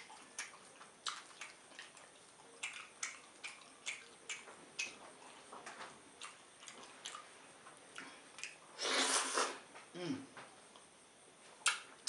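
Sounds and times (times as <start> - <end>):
wet chewing and smacking: 0.0 - 8.7, 11.6 - 12.0.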